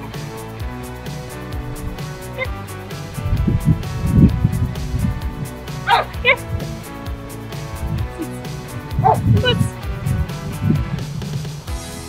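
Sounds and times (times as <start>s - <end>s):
background music: 0.0s - 12.0s
puppy yipping: 5.9s - 6.5s, 9.0s - 9.6s.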